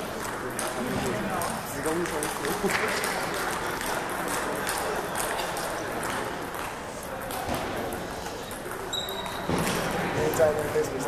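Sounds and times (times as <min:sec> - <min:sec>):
voices chattering and echoing: 0:00.0 - 0:11.0.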